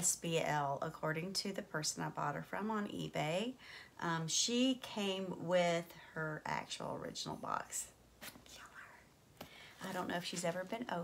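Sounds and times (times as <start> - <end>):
woman speaking: 0.0 - 8.0, 9.8 - 11.0.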